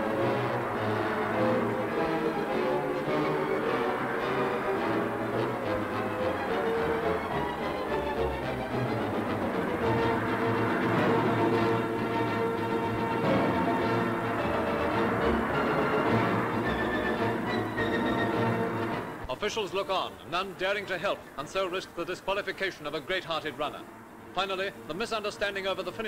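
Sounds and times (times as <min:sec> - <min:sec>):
orchestral music: 0:00.0 - 0:20.2.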